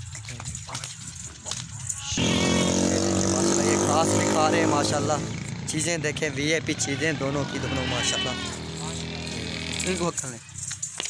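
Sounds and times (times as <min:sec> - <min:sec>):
motor engine running: 0:02.1 - 0:10.4.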